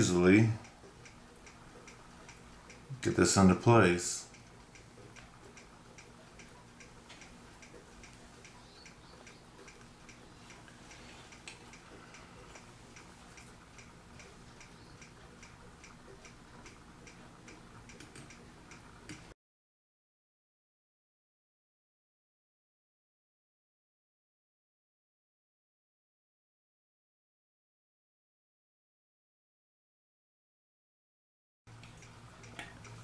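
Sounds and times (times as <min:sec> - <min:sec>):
mechanical clock ticking: 0:00.0 - 0:19.4, 0:31.7 - 0:33.0.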